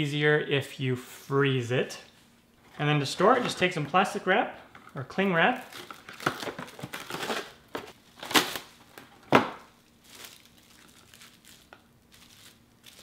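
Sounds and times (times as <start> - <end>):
plastic cling wrap crinkling: 5.5 - 13.0.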